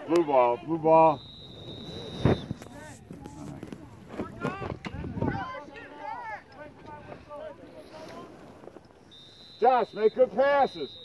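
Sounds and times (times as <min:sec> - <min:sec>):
voices shouting across a field: 0:00.0 - 0:11.0
wind buffeting microphone: 0:01.7 - 0:05.6.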